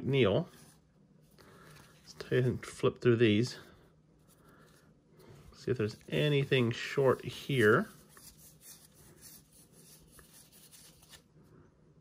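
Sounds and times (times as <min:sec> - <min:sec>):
cardboard cards flipped by hand: 0:09.9 - 0:11.3.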